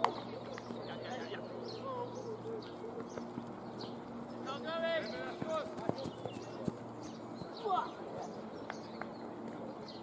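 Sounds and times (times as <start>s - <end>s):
birds chirping: 0.0s - 10.0s
distant wordless shout: 4.4s - 8.4s.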